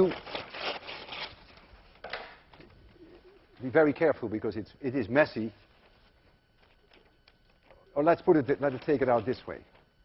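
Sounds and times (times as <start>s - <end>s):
paper being cut from roll: 0.0s - 1.5s
paper rustle: 0.0s - 2.0s, 5.5s - 10.0s.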